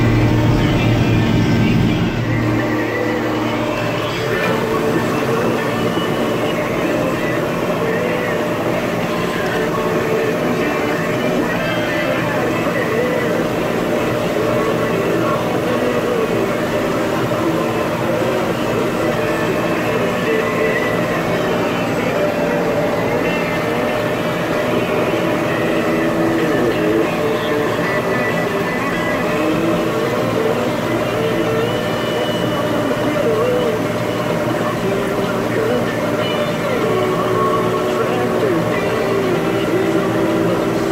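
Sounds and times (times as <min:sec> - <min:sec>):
tractor engine under load: 0:00.0 - 0:40.9.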